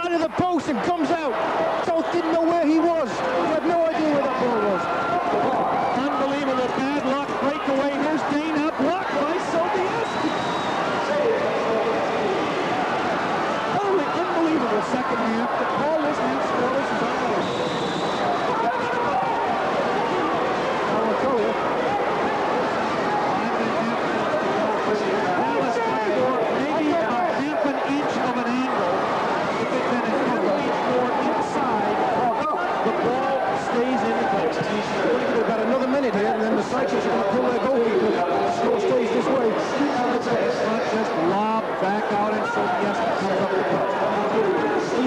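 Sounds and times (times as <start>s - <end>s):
crowd voices talking and calling: 0.0s - 45.0s.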